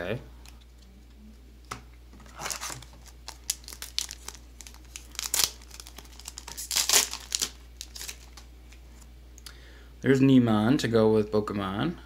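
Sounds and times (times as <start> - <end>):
foil wrapper crinkling and tearing: 2.3 - 8.5.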